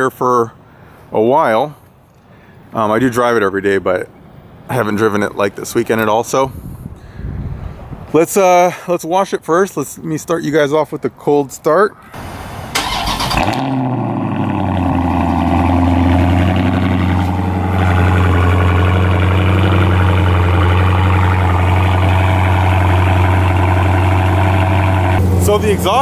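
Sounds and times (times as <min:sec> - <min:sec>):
engine cranking: 0:12.2 - 0:13.9
car engine starting and idling: 0:12.2 - 0:26.0.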